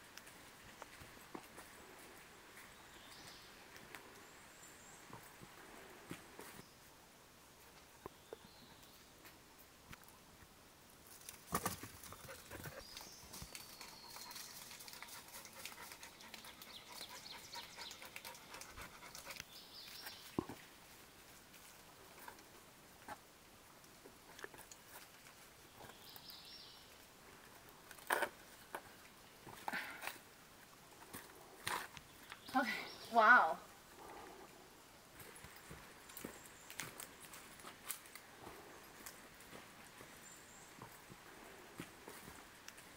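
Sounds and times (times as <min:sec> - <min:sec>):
dog panting: 0:14.3 - 0:19.5.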